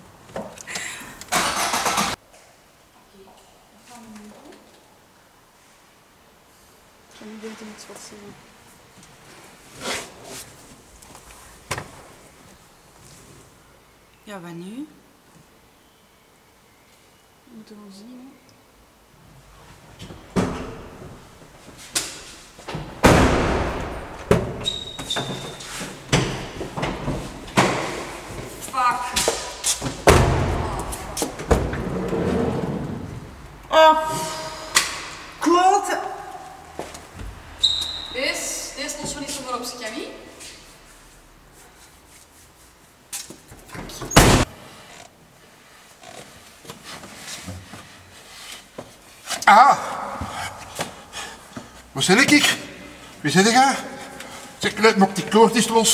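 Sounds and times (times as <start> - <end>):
heavy thud: 22.8 - 24.6, 29.2 - 31.9.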